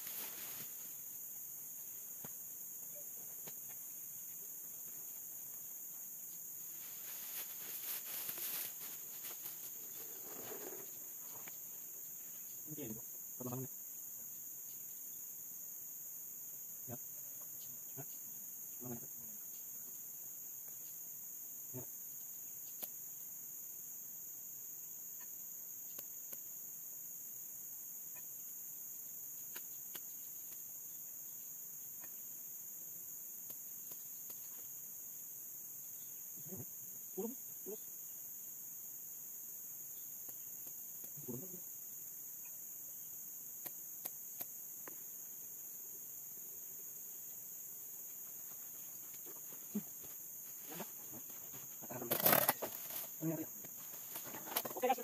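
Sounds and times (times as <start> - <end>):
insects chorus: 0.0 - 55.0.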